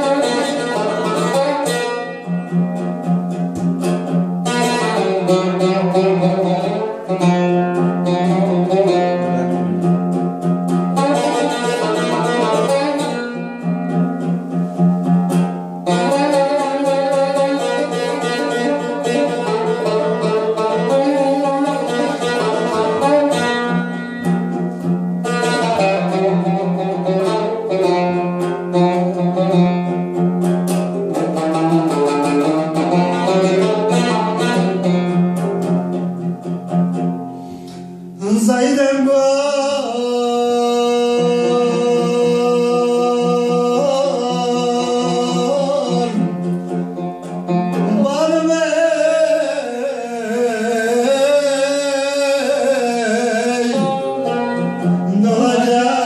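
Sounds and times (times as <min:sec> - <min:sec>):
plucked lute: 0:00.0 - 0:56.0.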